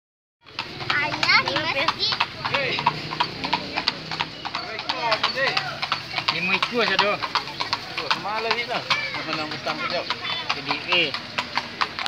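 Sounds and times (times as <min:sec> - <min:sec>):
horse hooves clip-clopping: 0:00.4 - 0:12.0
child chattering: 0:00.9 - 0:02.3, 0:08.8 - 0:10.5.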